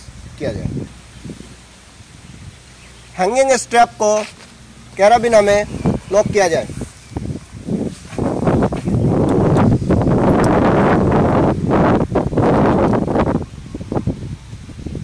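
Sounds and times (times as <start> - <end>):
wind buffeting microphone: 0.0 - 15.0
nylon straps rustling: 4.1 - 5.0, 5.7 - 9.3.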